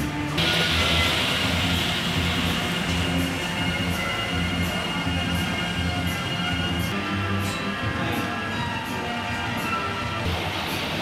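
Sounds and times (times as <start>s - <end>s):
model train rumbling: 0.4s - 6.9s.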